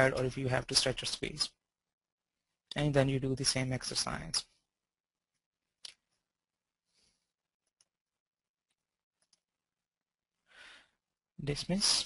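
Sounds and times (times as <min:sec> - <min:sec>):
man speaking: 0:00.0 - 0:01.6, 0:02.7 - 0:04.5, 0:11.4 - 0:12.0
man breathing: 0:10.4 - 0:11.0.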